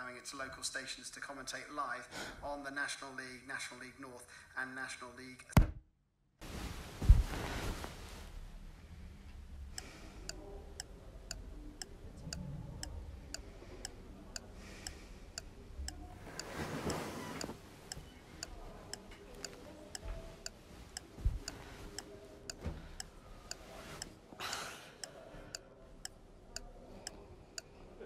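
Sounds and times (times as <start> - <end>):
soft rustle: 6.4 - 9.0, 16.1 - 18.7
clock ticking: 9.8 - 27.2.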